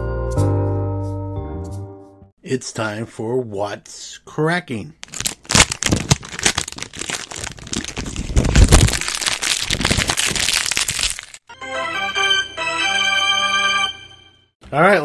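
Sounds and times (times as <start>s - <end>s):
cracks and crackles: 5.0s - 11.4s
held musical chord: 11.5s - 14.5s.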